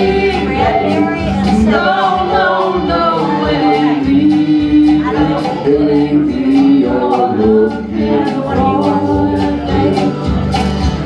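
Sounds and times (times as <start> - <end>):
woman singing with harmony: 0.0 - 10.3
strummed acoustic guitar: 0.0 - 11.0.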